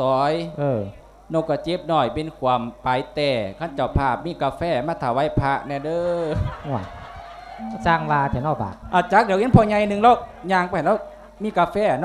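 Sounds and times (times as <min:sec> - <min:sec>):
faint drawn-out higher tone: 0:07.6 - 0:12.0.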